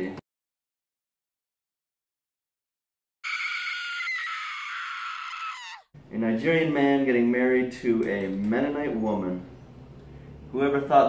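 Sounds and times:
woman screaming: 3.2 - 5.9.

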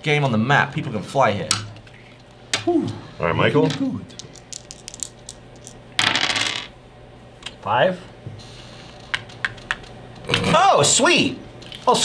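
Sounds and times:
dice clattering on wooden table: 4.2 - 6.7.

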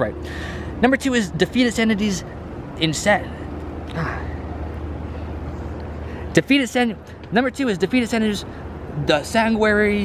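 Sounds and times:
low rumble of street ambience: 0.0 - 10.0.

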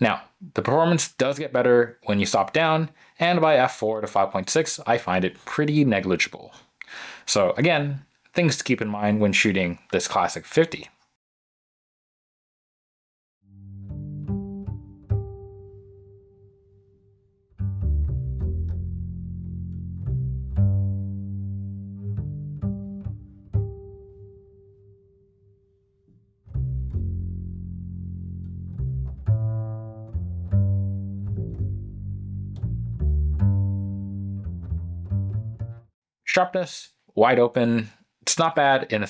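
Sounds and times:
low-pitched instrumental music: 13.5 - 16.9, 17.5 - 25.1, 26.5 - 35.9.

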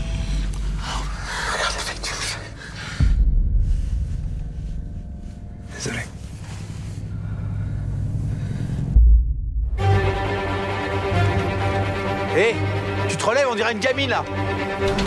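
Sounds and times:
low rumble: 0.0 - 12.3
sustained deep drone: 0.0 - 13.0
breathy rustling noises: 2.5 - 8.9
deep boom: 3.0 - 5.0, 7.9 - 9.9.

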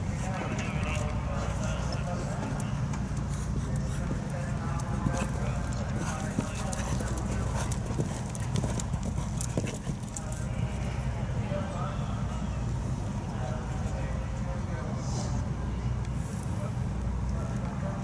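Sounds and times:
horse hooves cantering on sand: 0.0 - 12.4
background voices: 0.0 - 15.6.

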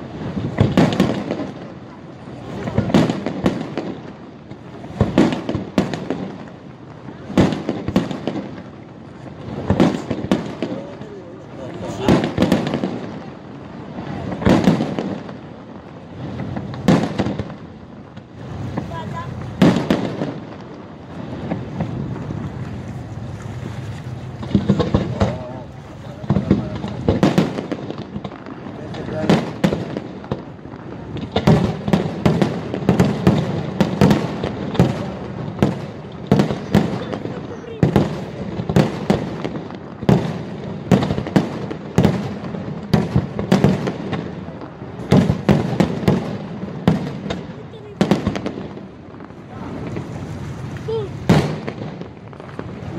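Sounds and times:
fireworks bursting with bangs: 0.0 - 52.9.

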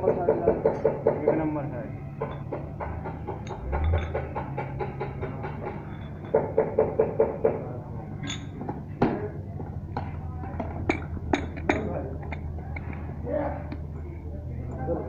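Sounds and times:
low steady hum: 7.7 - 15.0.

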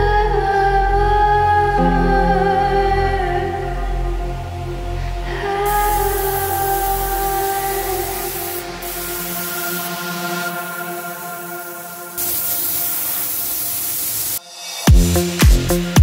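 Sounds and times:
synth background music: 0.0 - 16.0
spray gun hissing: 5.6 - 16.0.

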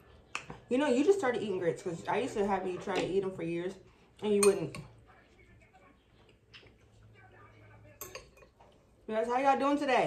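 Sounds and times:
metal spoon clinking in glass bowl: 7.9 - 8.6.

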